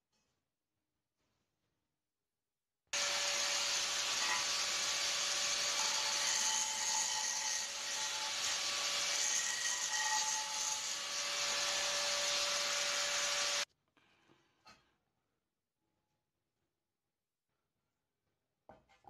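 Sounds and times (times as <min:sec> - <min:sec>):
angle grinder grinding steel: 0:03.0 - 0:13.7.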